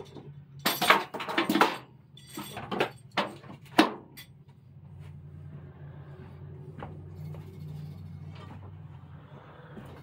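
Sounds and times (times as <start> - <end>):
footsteps on trailer floor: 3.3 - 10.0.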